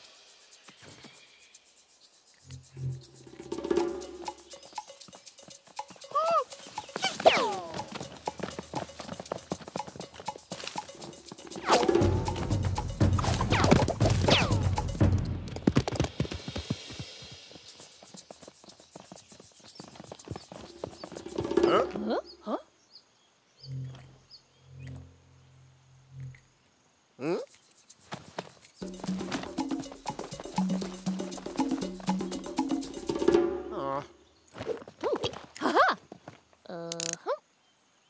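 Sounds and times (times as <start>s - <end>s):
cartoon music: 3.5s - 15.2s, 28.8s - 34.2s
cartoon sound effects: 6.0s - 7.9s, 13.4s - 14.8s
animal-like character vocals: 6.1s - 7.9s, 27.2s - 27.5s, 33.7s - 34.2s.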